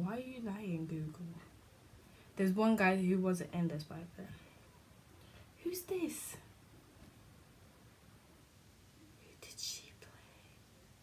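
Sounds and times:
woman whispering: 9.2 - 10.7.

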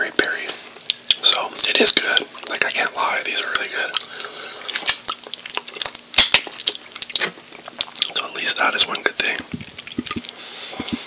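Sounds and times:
person chewing wetly: 0.8 - 2.6, 3.5 - 8.2, 9.4 - 11.0.

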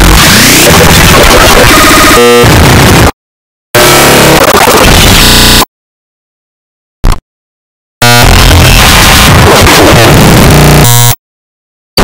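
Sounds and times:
distorted electronic noise: 0.0 - 3.2, 3.8 - 5.7, 8.0 - 11.2
harsh buzzing tone: 0.0 - 3.2, 3.8 - 5.7, 8.0 - 11.2.

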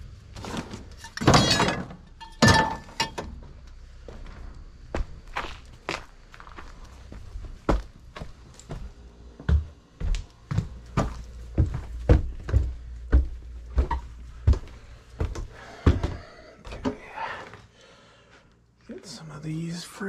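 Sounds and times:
junk crashing into metal bin: 0.4 - 3.4
footsteps thudding: 4.0 - 17.0.

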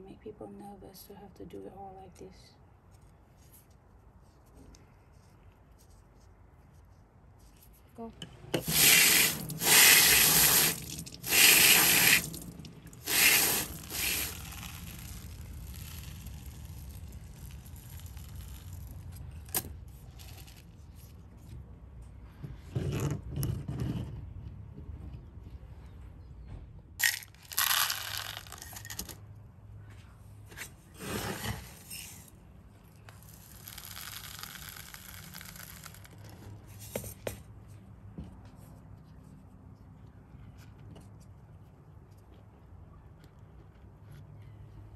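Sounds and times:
water spraying in bursts: 8.6 - 15.1
potting mix pouring into plastic pot: 8.6 - 18.9, 33.2 - 36.2.

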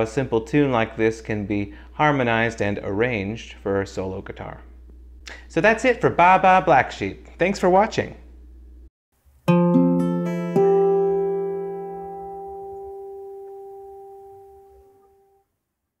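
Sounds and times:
acoustic guitar notes and chord: 9.4 - 15.4.

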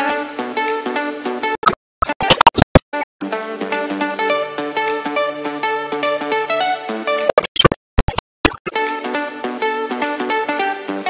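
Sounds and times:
background music: 0.0 - 1.6, 3.2 - 7.3, 8.7 - 11.0
clicks: 1.6 - 2.8.

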